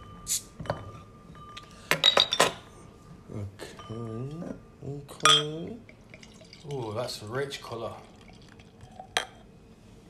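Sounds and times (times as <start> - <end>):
sharp glass clink: 5.2 - 5.6.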